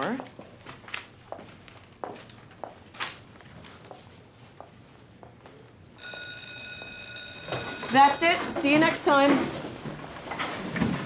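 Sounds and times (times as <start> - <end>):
school bell electronic tone: 6.0 - 8.6.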